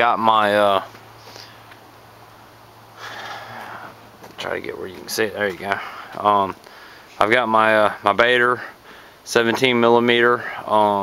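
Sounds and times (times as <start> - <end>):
person's short breath: 3.0 - 4.0.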